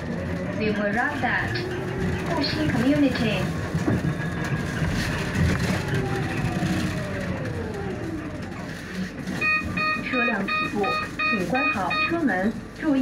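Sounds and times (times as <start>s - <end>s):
cabin and road rumble: 0.0s - 13.0s
bus door signal beeps: 9.4s - 12.2s.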